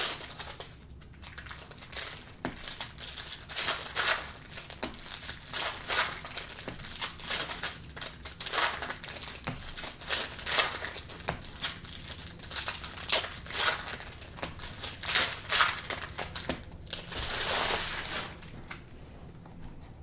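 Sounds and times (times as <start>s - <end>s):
foil wrappers crinkling and tearing: 0.0s - 18.9s.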